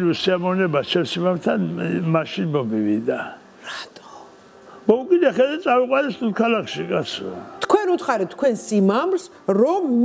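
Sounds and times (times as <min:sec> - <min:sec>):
breathy whispered sound: 0:03.6 - 0:04.9.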